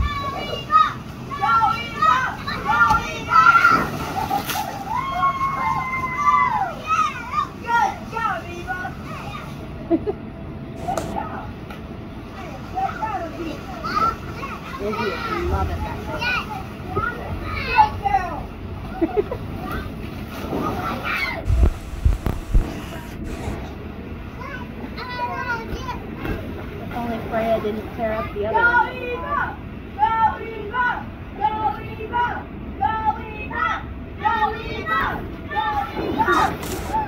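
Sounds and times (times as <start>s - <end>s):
children calling and chattering: 0.0s - 21.7s, 22.8s - 37.0s
splashing into water: 2.5s - 7.1s
low thumps: 21.5s - 23.3s.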